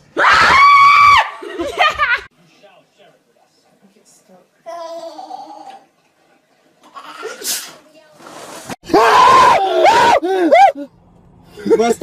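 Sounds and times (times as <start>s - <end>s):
person screaming: 8.9s - 10.9s.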